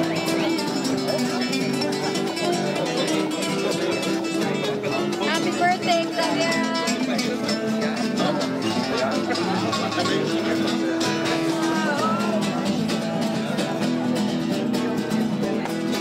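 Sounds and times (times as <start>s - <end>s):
people's voices: 0.0s - 16.0s
plucked acoustic guitar: 0.0s - 16.0s.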